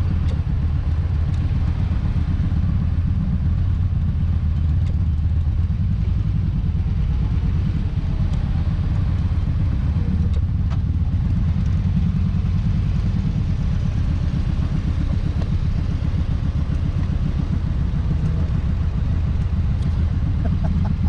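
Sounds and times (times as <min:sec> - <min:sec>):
motorcycle engine low rumble: 0:00.0 - 0:21.0.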